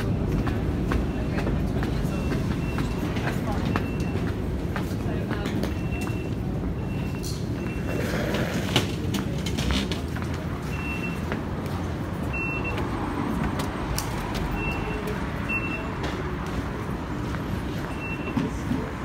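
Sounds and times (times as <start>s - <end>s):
road traffic rumble: 0.0s - 19.0s
station bustle: 0.0s - 19.0s.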